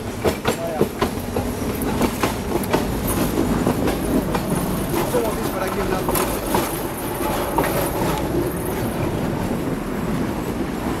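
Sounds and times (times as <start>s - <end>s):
rail clicks: 0.0s - 11.0s
tram wheels rumbling on rails: 0.0s - 11.0s.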